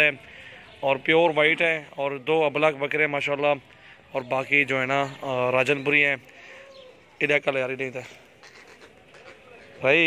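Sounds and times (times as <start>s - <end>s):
man speaking: 0.8s - 6.3s, 7.2s - 8.3s
low bird call: 6.3s - 7.2s.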